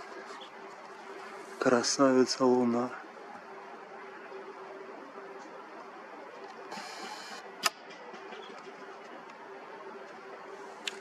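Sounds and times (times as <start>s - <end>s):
camera hum and hiss: 0.0s - 11.0s
zoom motor whirring: 6.7s - 7.4s.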